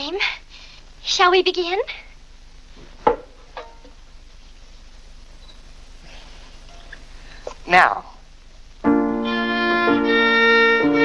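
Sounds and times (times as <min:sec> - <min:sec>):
faint soundtrack hiss: 0:00.0 - 0:11.0.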